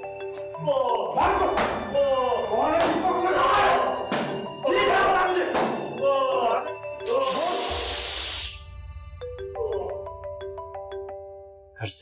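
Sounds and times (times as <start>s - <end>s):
phone ringtone melody: 0.0s - 2.6s, 3.6s - 8.1s, 9.1s - 11.7s.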